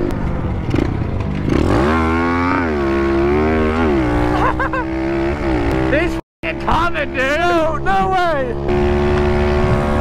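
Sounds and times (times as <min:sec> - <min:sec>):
motorbike engine revving: 0:00.0 - 0:10.0.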